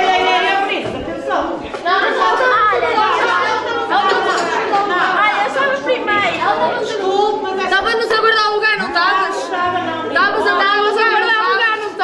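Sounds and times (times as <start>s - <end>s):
voices talking over one another: 0.0s - 12.0s.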